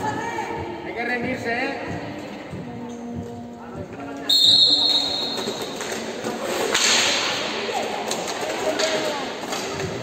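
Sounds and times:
referee's whistle blast: 4.3s - 5.6s.

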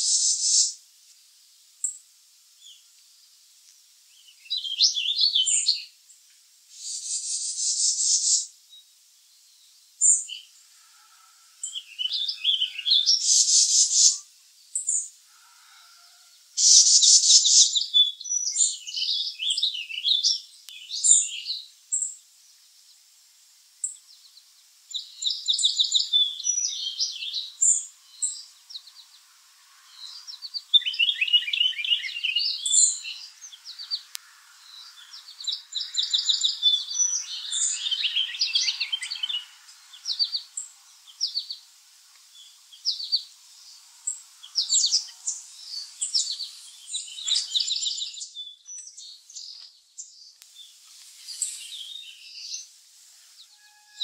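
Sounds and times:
songbirds chirping and trilling: 0.0s - 54.0s.

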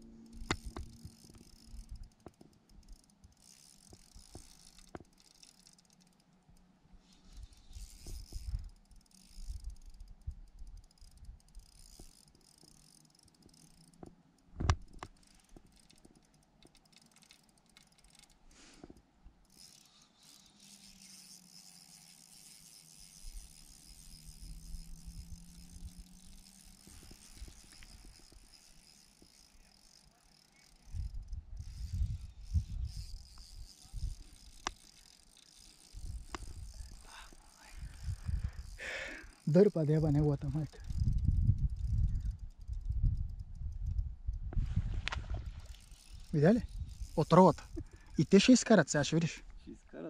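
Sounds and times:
wind buffeting microphone: 30.9s - 34.4s, 37.6s - 38.8s, 40.0s - 48.0s.

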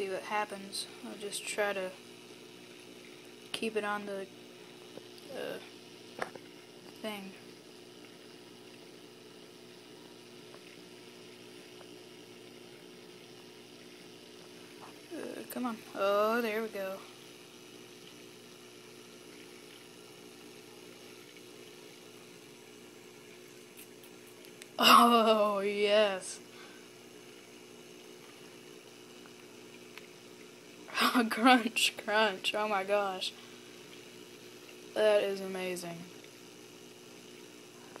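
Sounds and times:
faint motor hum: 0.0s - 38.0s
light hiss: 0.0s - 38.0s.

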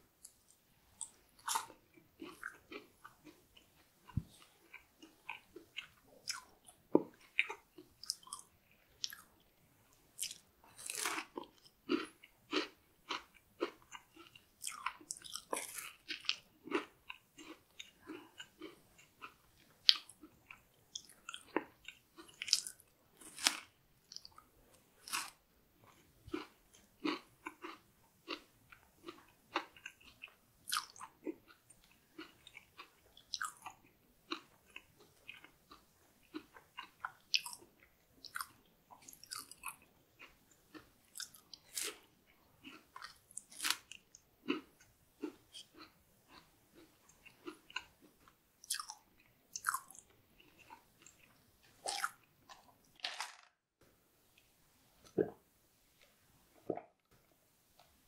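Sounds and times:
chocolate cracking under teeth: 51.8s - 53.6s.

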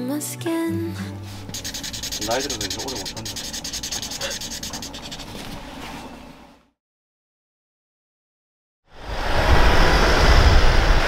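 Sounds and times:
marker rubbing on cardboard: 1.4s - 5.8s.

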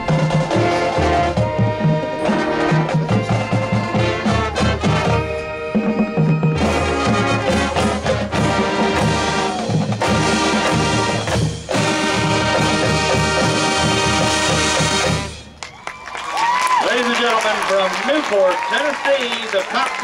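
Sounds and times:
marching band playing: 0.0s - 20.0s
crowd cheering and whistling: 15.4s - 20.0s.

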